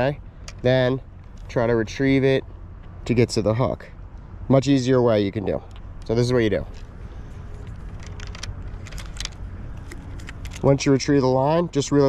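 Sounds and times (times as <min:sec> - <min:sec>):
low background rumble: 0:00.0 - 0:12.0.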